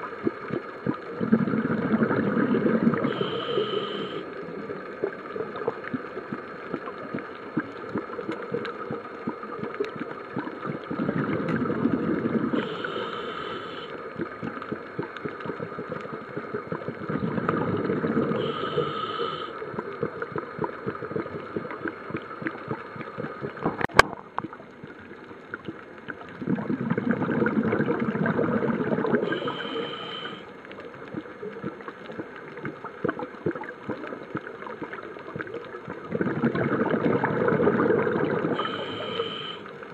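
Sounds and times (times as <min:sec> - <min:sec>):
exhaled bubbles rumbling: 0:00.0 - 0:39.3
fine steady crackling: 0:00.0 - 0:39.9
whistling hiss of inhalation: 0:03.1 - 0:04.2, 0:12.6 - 0:13.9, 0:18.4 - 0:19.5, 0:29.3 - 0:30.5, 0:38.6 - 0:39.7.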